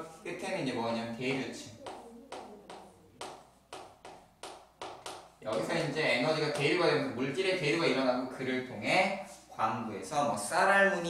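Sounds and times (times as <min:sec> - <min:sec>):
chalk strokes on chalkboard: 0:01.6 - 0:05.8.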